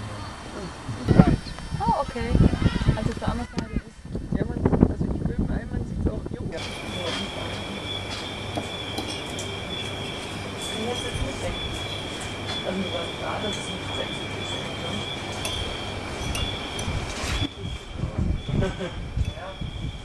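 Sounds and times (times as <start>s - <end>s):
low hum: 0.0s - 20.0s
low voices of diners: 0.0s - 20.0s
two-tone high-pitched whine: 6.6s - 20.0s.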